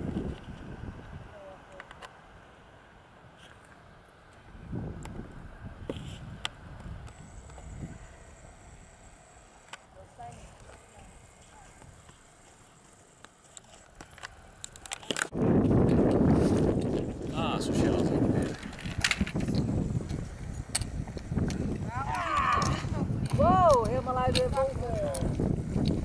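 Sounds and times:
voices: 1.3 - 2.0, 7.1 - 15.3, 17.2 - 25.4.

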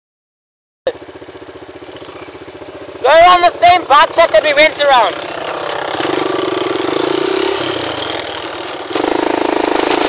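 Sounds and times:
quad bike engine idling: 0.9 - 10.0.

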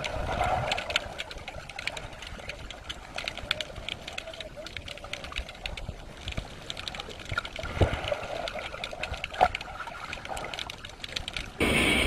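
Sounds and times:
underwater crackle of clicks: 0.0 - 11.6.

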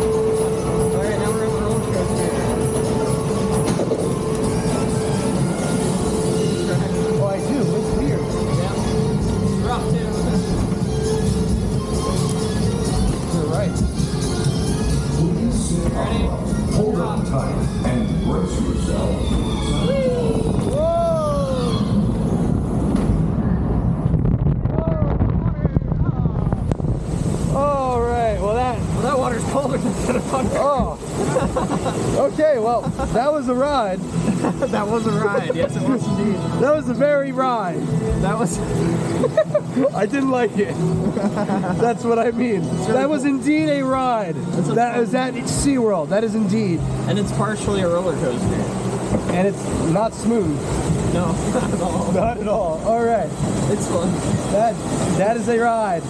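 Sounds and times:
boat rolling along track rumble: 0.0 - 56.0
constant hum: 0.0 - 56.0
wind on microphone: 17.5 - 32.0.

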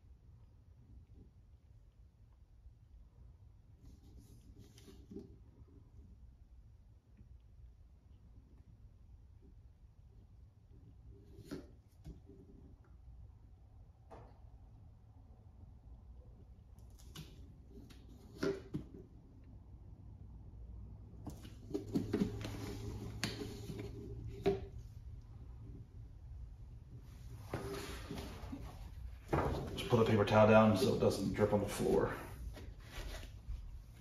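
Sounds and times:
towel rustling: 27.2 - 34.0.

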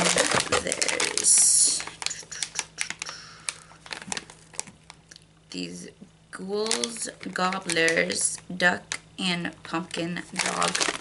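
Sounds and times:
plastic pouch crinkling: 0.0 - 5.2, 6.6 - 9.1, 9.8 - 11.0.

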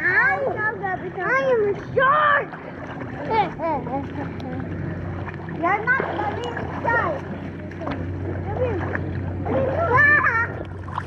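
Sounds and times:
splashing in a pool: 0.0 - 11.0
steady low hum: 0.0 - 11.0.

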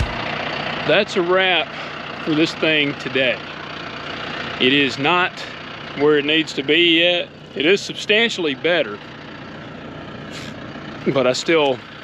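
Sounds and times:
diesel tractor engine idling: 0.0 - 12.0.

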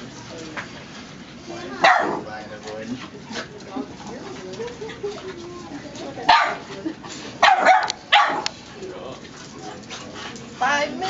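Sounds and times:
puppies barking: 1.7 - 2.4, 6.2 - 6.7, 7.4 - 8.6.

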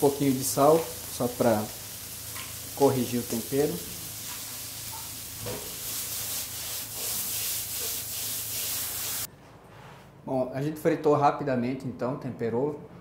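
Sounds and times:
frying pan sizzling: 0.0 - 9.3.

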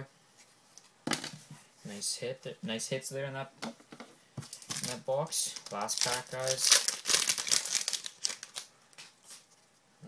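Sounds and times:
wrapper crinkling and tearing: 4.5 - 9.2.

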